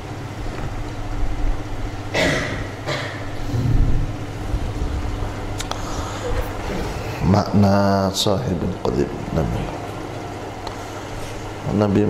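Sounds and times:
steady low rumble: 0.0s - 11.9s
man coughing: 2.1s - 3.3s.

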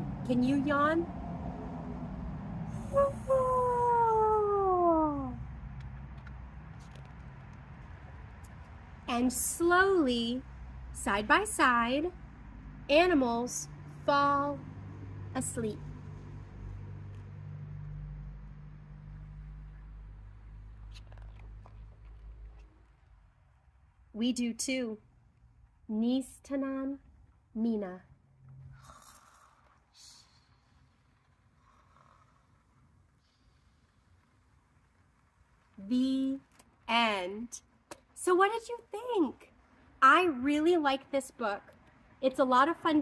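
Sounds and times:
low motor hum: 0.0s - 8.4s
woman yawning: 2.8s - 5.3s.

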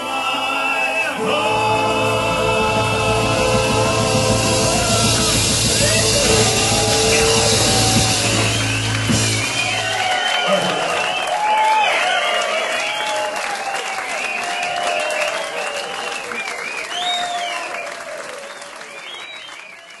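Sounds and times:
audience applauding and cheering: 0.8s - 20.0s
band final chord: 1.2s - 9.9s.

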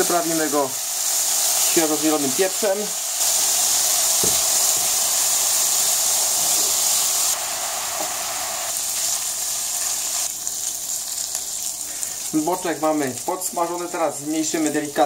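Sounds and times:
bacon sizzling in a pan: 0.0s - 15.0s.

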